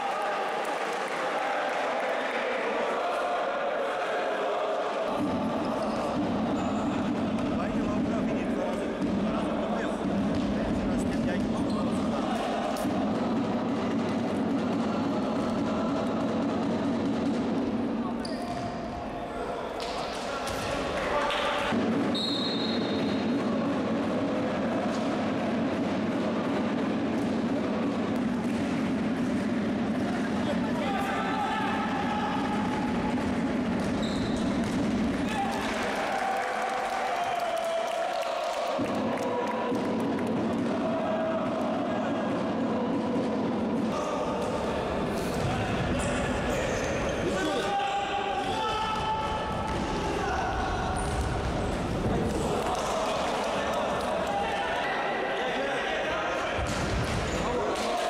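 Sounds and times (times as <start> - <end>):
players shouting: 30.2 - 34.3, 43.9 - 58.0.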